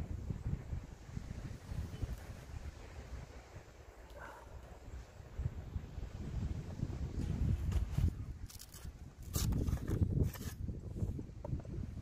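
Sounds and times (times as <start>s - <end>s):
wind rumbling on microphone: 0.0s - 12.0s.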